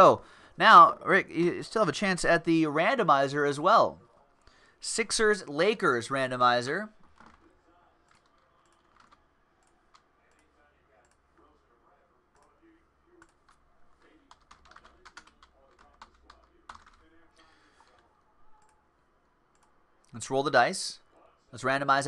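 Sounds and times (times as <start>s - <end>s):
computer keyboard typing: 7.0s - 7.5s, 8.1s - 11.2s, 14.2s - 17.1s.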